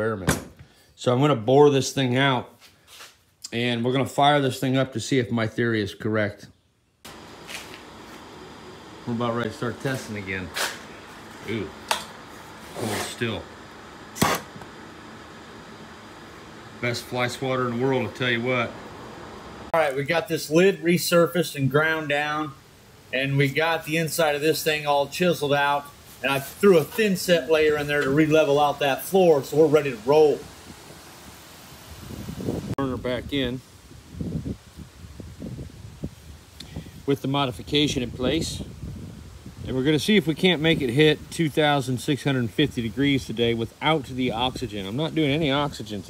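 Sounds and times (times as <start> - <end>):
low room noise hiss: 0.0 - 46.0
sharp slap swatting fly: 14.2 - 14.5
wind noise on microphone: 31.8 - 41.7
microphone handling rumble: 31.9 - 39.8.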